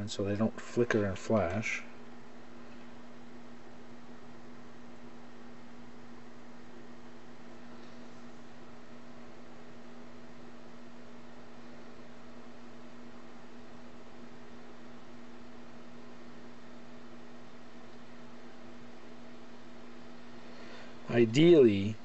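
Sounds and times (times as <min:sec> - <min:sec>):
constant low hum: 0:00.0 - 0:22.0.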